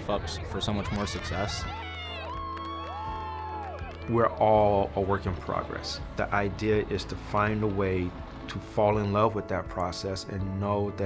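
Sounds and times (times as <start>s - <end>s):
background music with low bass: 0.0s - 11.0s
young women cheering and whooping: 1.6s - 4.0s.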